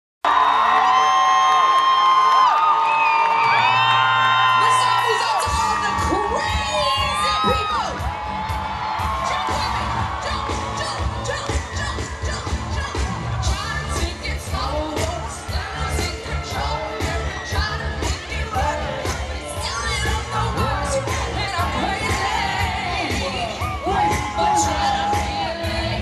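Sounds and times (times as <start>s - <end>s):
crowd screaming and cheering: 0.2s - 26.0s
deep bass music: 5.5s - 26.0s.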